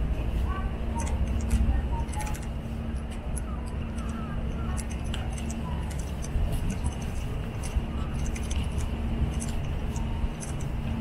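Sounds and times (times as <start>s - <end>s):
distant traffic: 0.0s - 11.0s
wind rumble: 0.0s - 11.0s.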